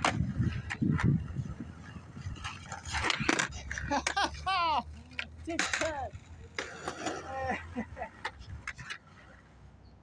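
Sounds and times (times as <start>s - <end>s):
skateboard clacking on concrete: 0.0s - 7.4s, 8.1s - 9.5s.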